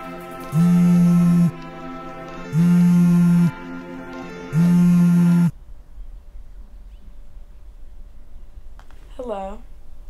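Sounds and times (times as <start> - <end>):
mobile phone vibrating: 0.5 - 1.6, 2.5 - 3.6, 4.5 - 5.5.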